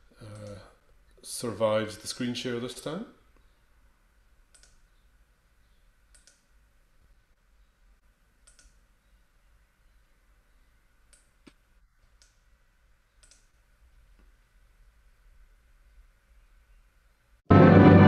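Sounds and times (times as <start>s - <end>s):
computer mouse clicks: 0.2s - 0.6s, 4.5s - 5.0s, 6.1s - 6.5s, 8.4s - 8.9s, 11.1s - 12.4s, 13.1s - 13.6s.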